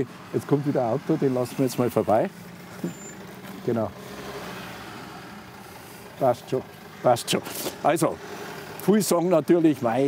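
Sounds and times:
van engine at low revs: 0.0 - 10.0.

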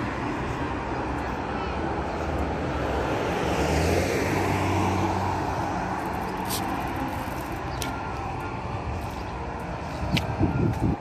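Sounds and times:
car passing: 0.0 - 11.0.

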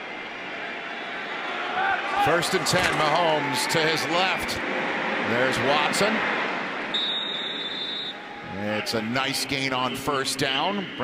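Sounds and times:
stadium crowd noise: 0.0 - 11.0
referee's whistle: 6.9 - 8.2, 9.8 - 11.0.

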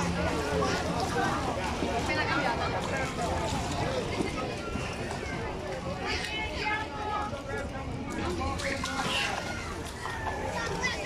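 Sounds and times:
children playing and shouting: 0.0 - 11.0
water splashing: 0.0 - 11.0.

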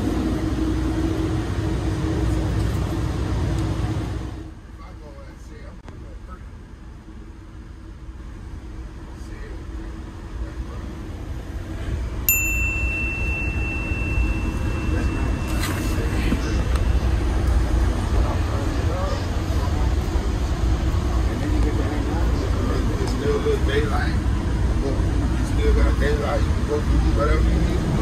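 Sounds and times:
passengers talking: 0.0 - 28.0
train cabin rumble: 0.0 - 28.0.

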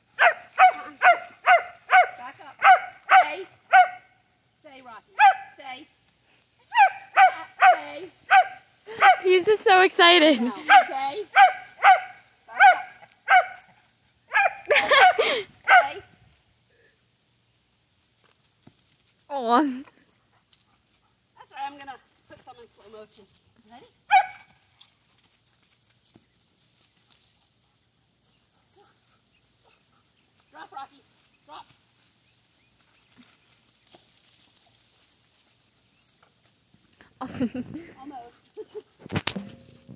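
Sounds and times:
dog barking high-pitched: 0.2 - 4.1, 5.2 - 5.5, 6.7 - 9.3, 10.7 - 13.6, 14.3 - 16.0, 24.1 - 24.4.

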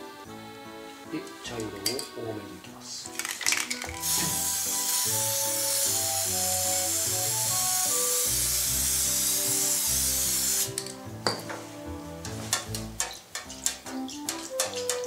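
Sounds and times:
spray paint can hissing: 3.2 - 10.9.

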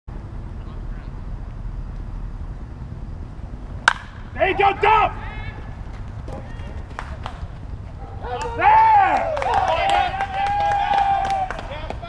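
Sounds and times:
steady low rumble: 0.1 - 9.3
baseball bat cracking ball: 3.8 - 4.4, 5.9 - 7.7.

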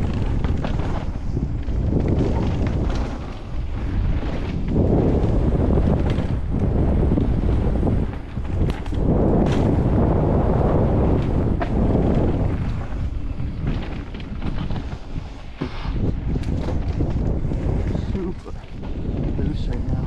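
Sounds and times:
bike clicks and rattles: 0.0 - 20.0
bike tyre rumble: 0.0 - 20.0
wind rushing over microphone: 0.0 - 20.0.

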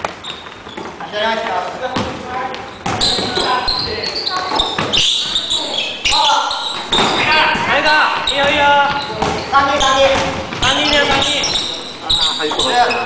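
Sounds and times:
players calling out: 2.9 - 13.0
basketball bouncing on wooden floor: 6.7 - 11.4.

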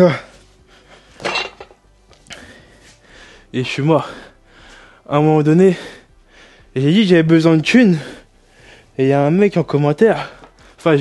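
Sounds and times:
weight plates clinking: 1.2 - 1.8.

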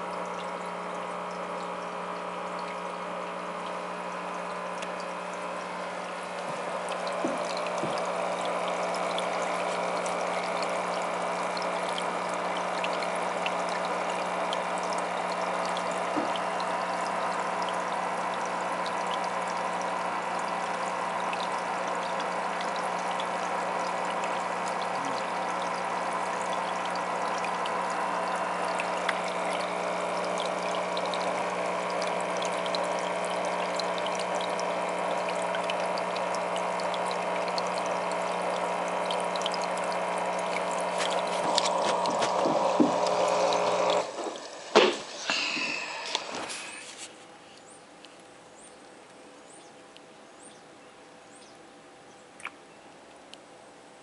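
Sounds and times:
aquarium air stone bubbling: 0.0 - 47.8
pump hum: 0.0 - 54.0.

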